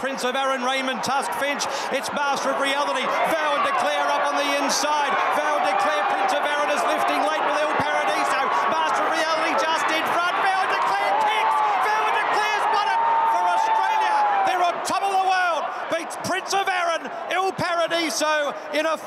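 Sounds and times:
crowd noise: 0.0 - 19.0
race caller shouting: 2.7 - 19.0.

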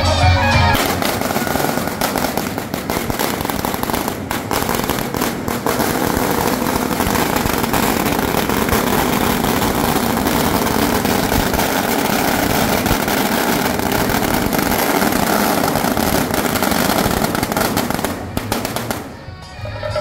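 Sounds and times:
firecrackers crackling: 0.6 - 19.5.

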